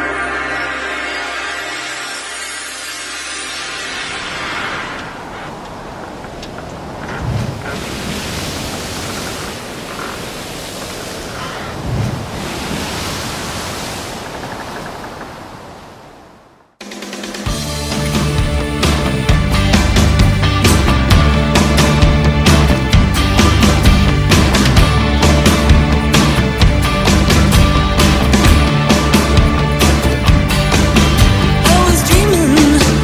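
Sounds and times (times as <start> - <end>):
musical intro tone: 0.0 - 5.1
rushing sea water: 0.0 - 33.0.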